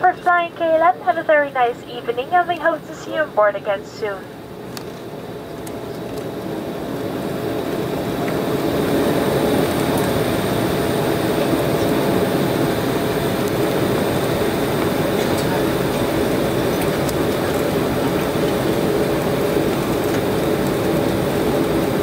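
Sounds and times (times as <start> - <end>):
jet cabin engine and rolling noise: 0.0 - 22.0.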